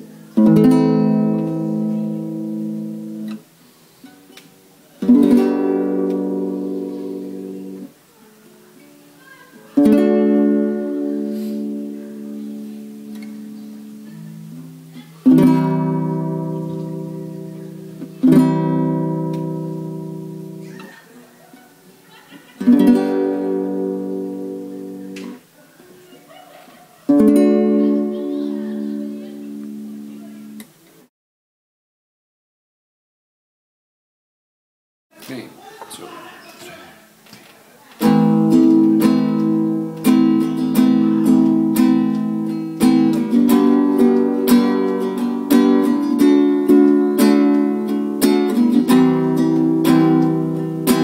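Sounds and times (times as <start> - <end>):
classical guitar chords ringing: 0.0 - 8.1, 8.7 - 20.8, 22.6 - 25.6, 27.0 - 31.1, 38.0 - 51.0.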